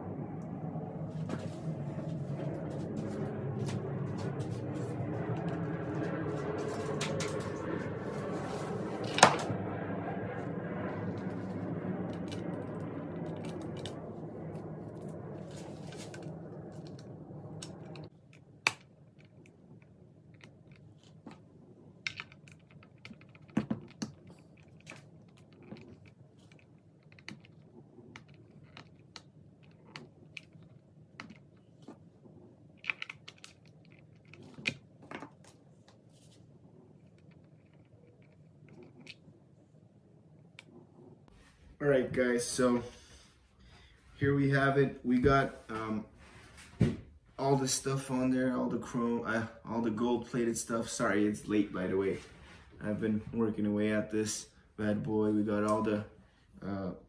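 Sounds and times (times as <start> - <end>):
steady multi-tone hum: 0.0 - 57.0.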